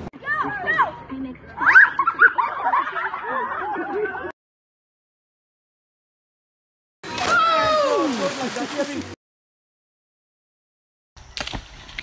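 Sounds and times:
body splashing into pool: 7.0 - 9.2.

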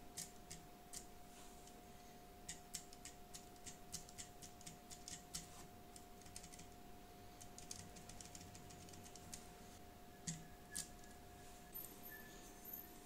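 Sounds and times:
keypad keys clicking: 0.2 - 1.1, 2.5 - 5.5, 6.2 - 6.7, 7.4 - 9.4.

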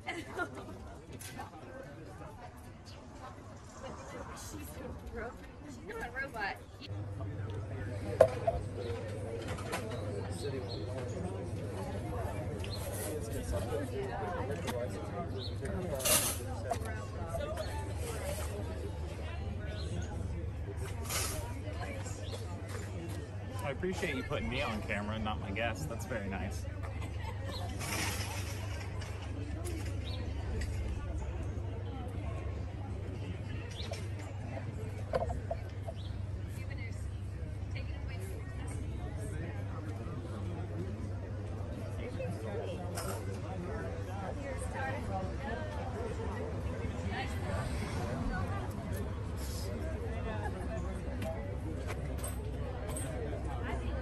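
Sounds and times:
faint voices: 0.0 - 54.0
outdoor background noise: 0.0 - 54.0
steady low rumble: 2.3 - 9.3, 43.9 - 52.2.

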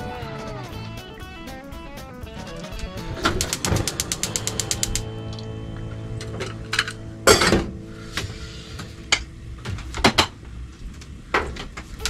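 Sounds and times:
gas igniter clicking rapidly: 3.2 - 5.0.

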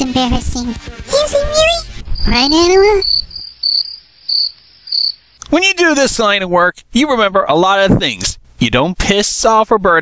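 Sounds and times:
dialogue: 0.0 - 10.0
crickets chirping: 1.6 - 5.4.

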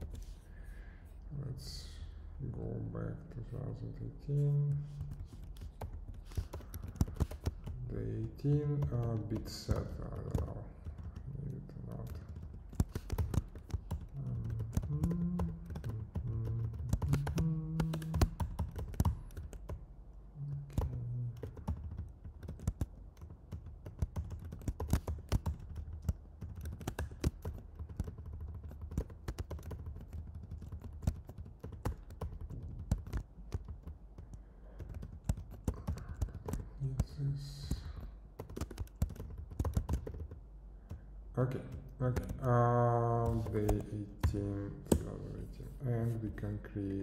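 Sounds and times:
man's voice murmuring: 1.3 - 5.2, 7.7 - 12.3, 14.1 - 18.4, 20.4 - 21.6, 35.8 - 38.1, 41.4 - 47.0
computer keyboard typing: 4.4 - 19.8, 20.4 - 41.0, 41.6 - 45.3.

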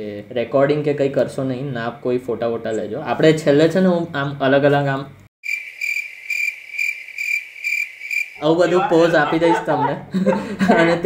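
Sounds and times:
cricket chirping: 5.4 - 9.7.

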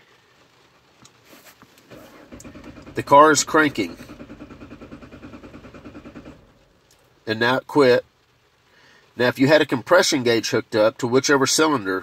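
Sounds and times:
engine cranking by starter: 1.8 - 7.1.

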